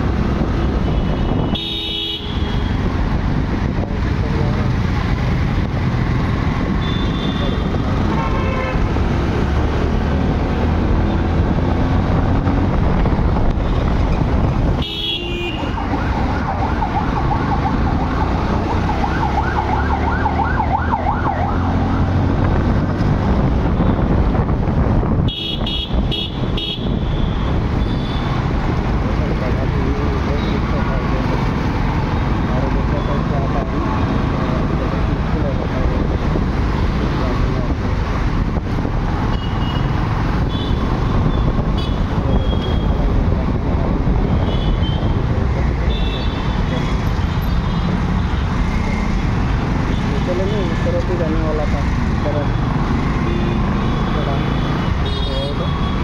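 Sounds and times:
passing vehicles: 0.0s - 56.0s
wind rumble on microphone: 9.8s - 14.8s, 22.0s - 27.8s, 34.6s - 39.3s, 40.1s - 45.7s.

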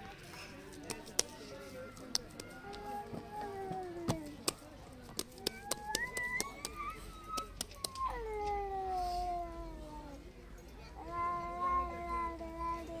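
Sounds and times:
dough slapped by hand: 4.1s - 8.0s.

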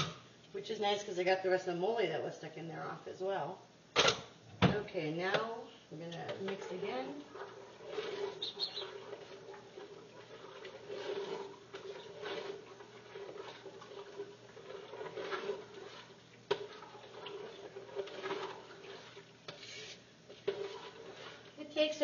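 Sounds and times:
spoon stirring thick sauce: 6.2s - 22.0s.

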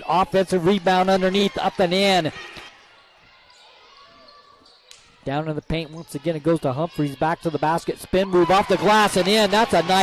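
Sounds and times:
faint gymnasium ambience: 0.0s - 10.0s.

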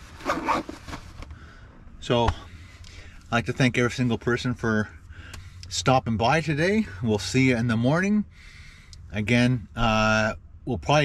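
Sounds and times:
backpack zipper zipping: 0.2s - 0.9s.

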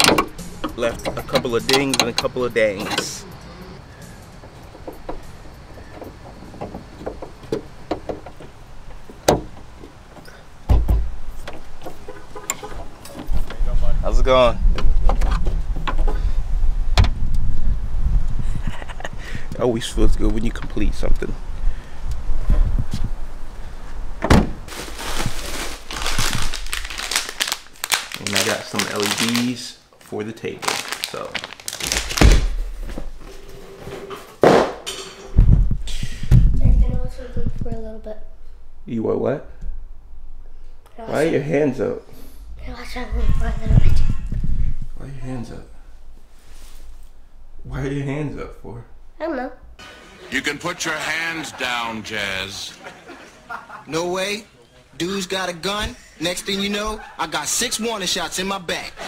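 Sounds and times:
low rumble of handling noise: 0.0s - 19.2s
cardboard box thump: 34.4s - 34.8s.

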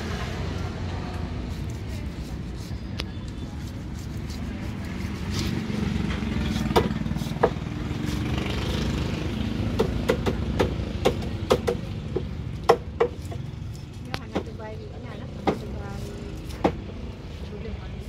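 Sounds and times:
fish knife chopping onto wooden block: 6.2s - 7.7s, 9.7s - 13.2s.

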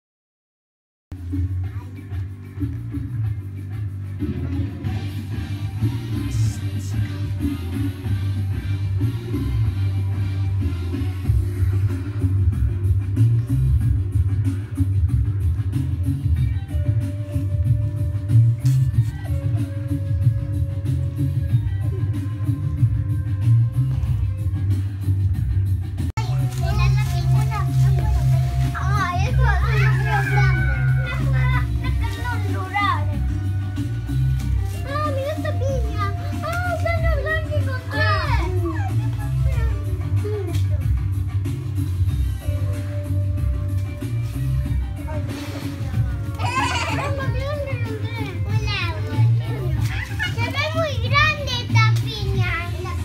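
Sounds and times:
background music: 1.1s - 53.0s
young children chattering: 16.7s - 24.5s, 26.2s - 53.0s.

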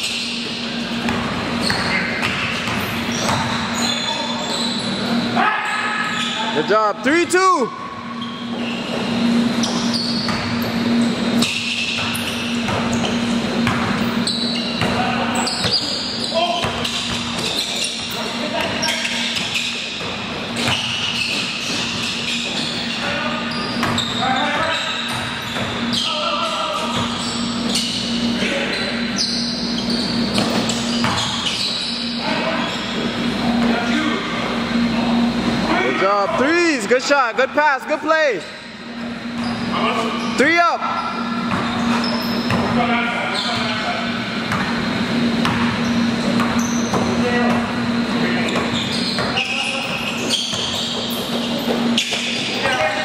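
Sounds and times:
players' voices echoing: 0.6s - 8.1s, 32.0s - 42.0s
basketball bouncing on floor: 1.0s - 3.6s, 12.0s - 14.0s, 30.4s - 31.3s, 44.5s - 44.8s, 45.4s - 47.6s
steady low hum: 6.0s - 24.2s, 24.9s - 53.0s.

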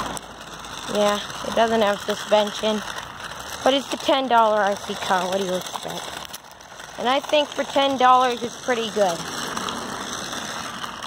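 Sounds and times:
toy truck motor grinding rattle: 0.0s - 11.0s
tyres rolling over stones: 0.0s - 11.0s.

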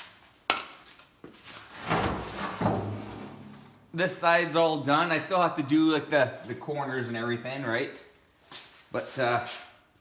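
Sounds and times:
rubbing and scraping handling noise: 0.0s - 3.9s.

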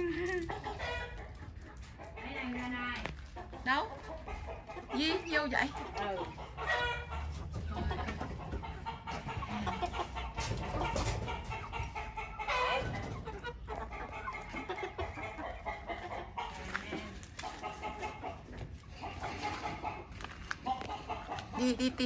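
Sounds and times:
chickens clucking: 0.0s - 22.0s.

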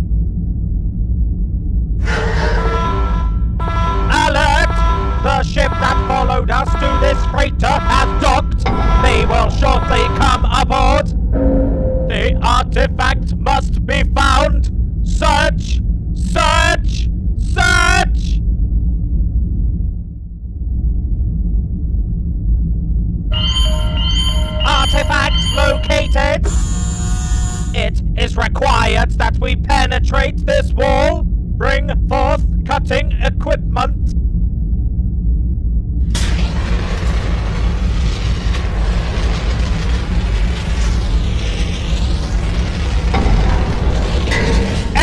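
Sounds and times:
faint hum: 0.0s - 45.0s
low rumbling drone: 0.0s - 45.0s
warbling electronic calls: 4.1s - 13.0s, 23.3s - 27.8s.

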